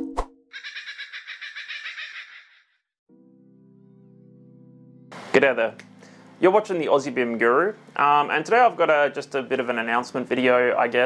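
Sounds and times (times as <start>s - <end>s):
high fluttering bird-like twitter: 0.6s - 2.7s.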